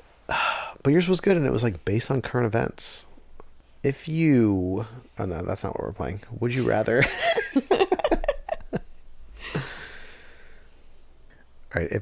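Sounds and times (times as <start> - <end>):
person sighing: 0.3 - 0.7, 9.4 - 10.5.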